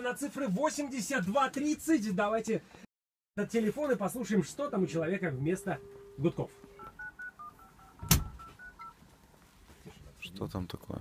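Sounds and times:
touch-tone dialing beeps: 5.6s - 9.0s
loud thump: 8.0s - 8.4s.

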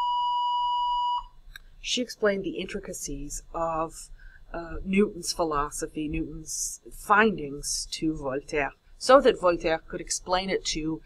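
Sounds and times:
high electronic beep: 0.0s - 1.3s.

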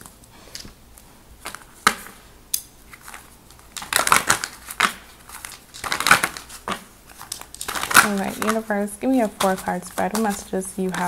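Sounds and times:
cards clicking: 1.4s - 11.0s
playing cards being shuffled: 2.9s - 11.0s.

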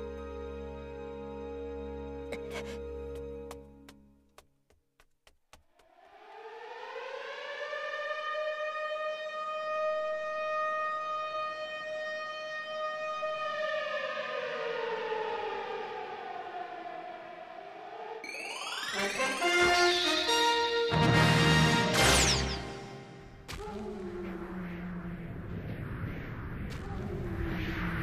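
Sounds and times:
air-raid siren wailing: 6.1s - 20.9s.

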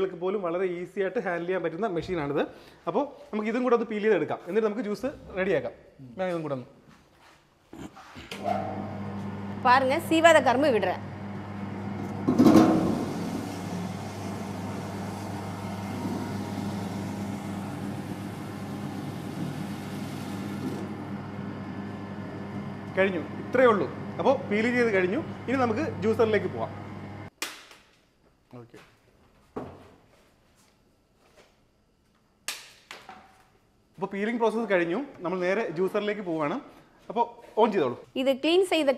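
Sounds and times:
juicer motor hum: 8.4s - 27.3s
rollers grinding sugarcane: 11.8s - 21.1s.

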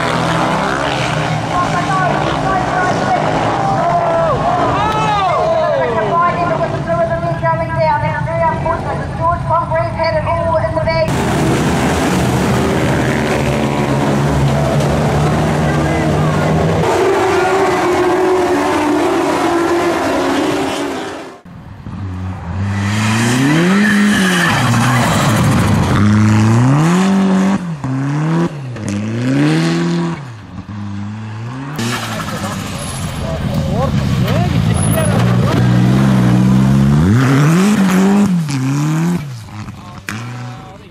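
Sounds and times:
rally car engines revving: 0.0s - 40.9s
trackside noise: 0.0s - 40.9s.

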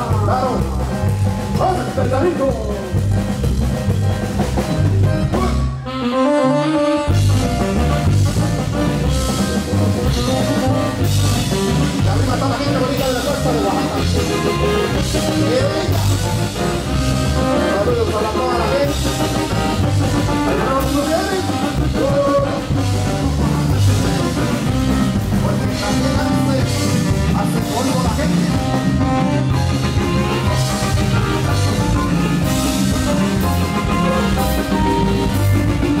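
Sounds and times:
congas: 0.0s - 36.0s
drum kit: 0.0s - 36.0s
keyboard: 0.0s - 36.0s
loud dance music: 7.3s - 36.0s.

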